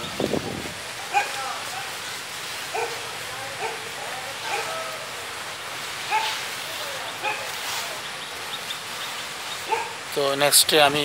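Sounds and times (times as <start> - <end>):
steady outdoor hiss: 0.0 - 11.0
animal calls: 7.0 - 10.1.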